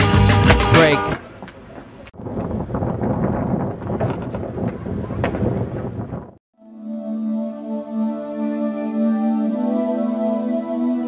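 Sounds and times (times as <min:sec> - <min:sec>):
wind buffeting microphone: 0:01.2 - 0:06.4.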